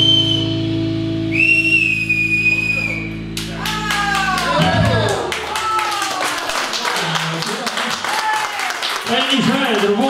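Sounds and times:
audience whistling: 0:00.0 - 0:04.4
guitar and bass chord ringing: 0:00.0 - 0:05.7
applause: 0:03.4 - 0:10.0.

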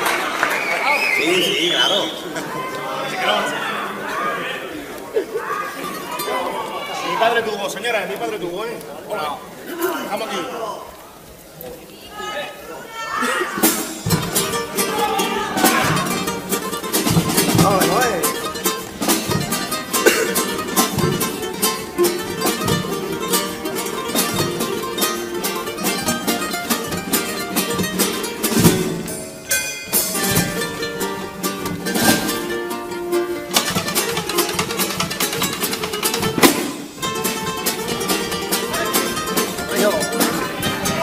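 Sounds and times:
strummed guitars: 0:13.5 - 0:41.0.

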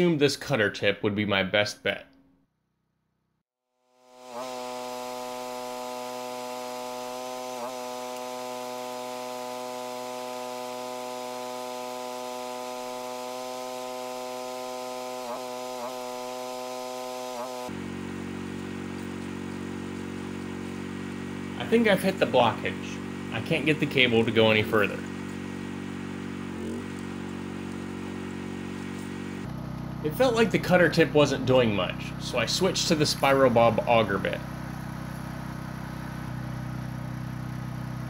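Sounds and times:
drain cleaner motor hum: 0:04.0 - 0:38.0.

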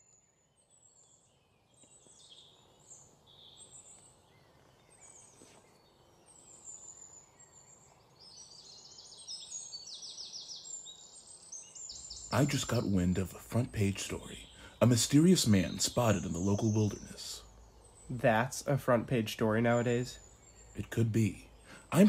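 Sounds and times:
faint high bird chirps: 0:00.0 - 0:22.0
rapid bird trills: 0:19.4 - 0:22.0.

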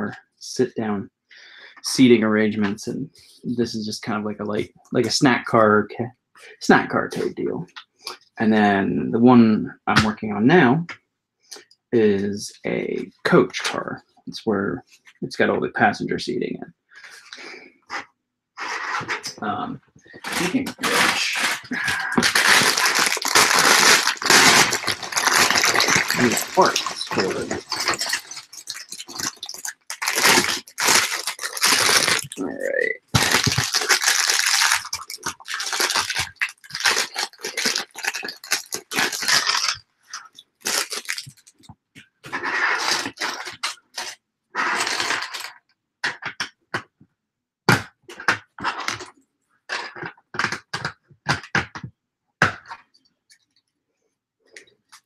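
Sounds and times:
plastic pieces rustling and clicking: 0:20.2 - 0:41.7.

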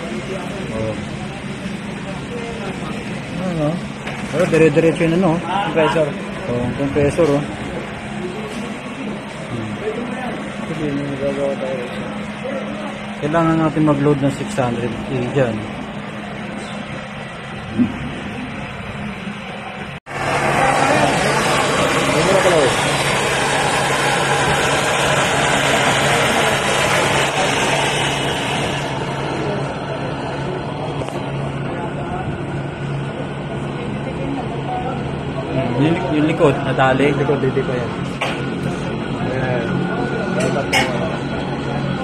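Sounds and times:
refrigerator compressor humming: 0:00.0 - 0:42.0
torch flame hissing: 0:20.1 - 0:31.3.

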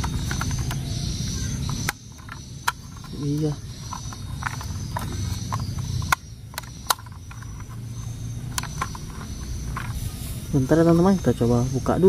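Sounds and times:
plastic clicks and taps: 0:00.0 - 0:00.9, 0:01.6 - 0:07.8, 0:08.5 - 0:10.0.

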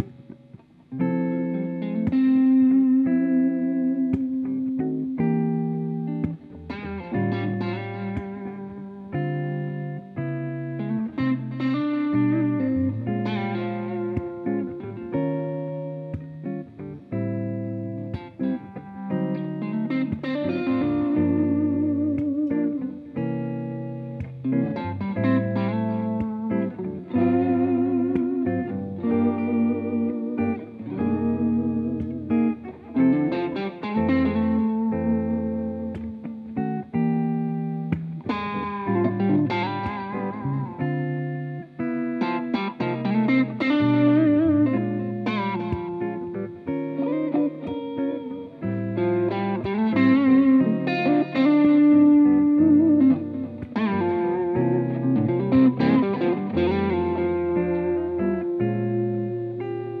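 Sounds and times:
electric guitar lead melody: 0:00.0 - 1:00.0
hollow-body guitar chords: 0:00.0 - 1:00.0.

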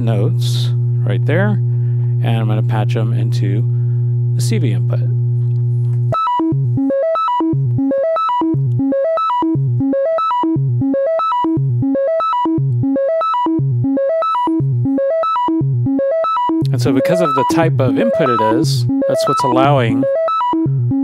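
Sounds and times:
synthesizer sine wave sequence: 0:00.0 - 0:21.0.

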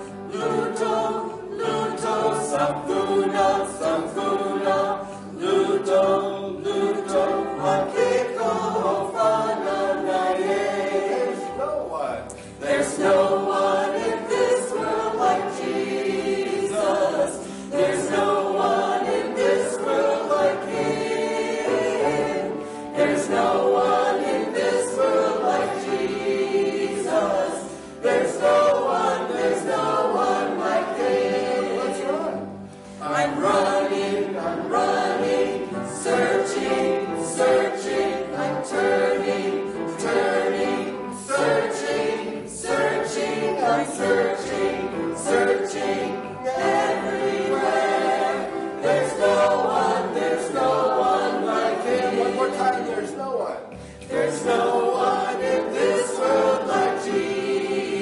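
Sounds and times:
congregation singing a hymn: 0:00.0 - 0:58.0.

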